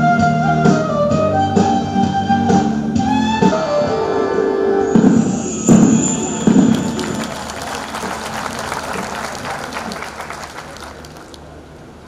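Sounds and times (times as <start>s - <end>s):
audience applauding: 5.8s - 11.5s.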